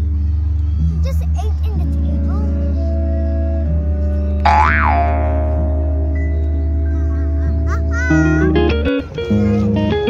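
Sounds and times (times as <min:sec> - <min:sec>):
sustained tone background music: 0:00.0 - 0:10.0
comic boing sound effect: 0:04.5 - 0:05.8.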